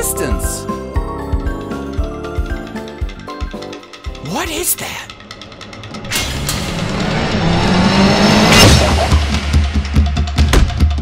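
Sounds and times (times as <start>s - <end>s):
motorcycle rushing past: 5.3s - 10.0s.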